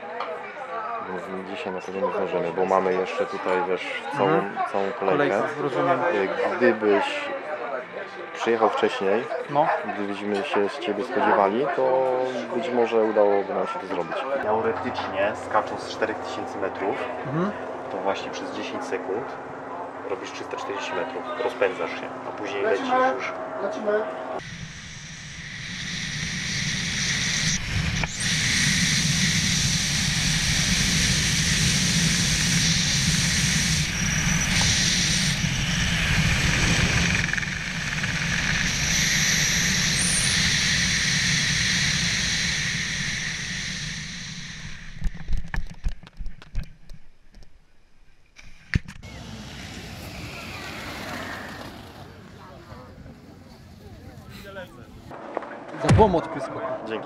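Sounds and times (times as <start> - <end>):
wind rushing over microphone: 24.4 - 46.0.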